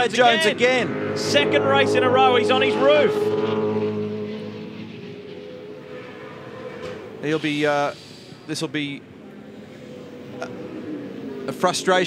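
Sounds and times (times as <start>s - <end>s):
race car engine drone: 0.0s - 12.0s.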